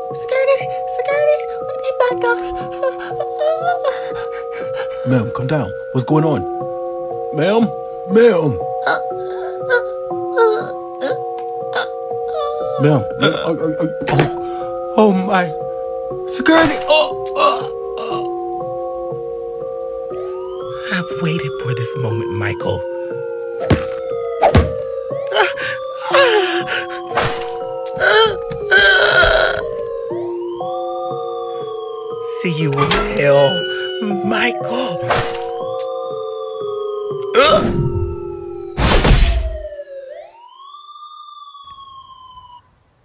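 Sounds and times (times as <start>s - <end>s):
suspenseful film music: 0.0s - 42.6s
siren wailing: 8.1s - 42.8s
sharp impact hits: 38.8s - 39.6s.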